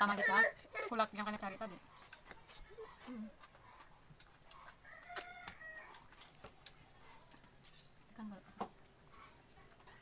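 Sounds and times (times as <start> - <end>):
rooster crowing: 4.8 - 6.0.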